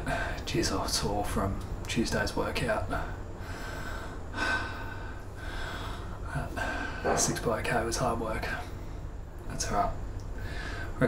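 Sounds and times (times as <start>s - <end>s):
faint steady hum: 0.0s - 11.0s
man breathing hard: 3.4s - 7.2s, 10.4s - 11.0s.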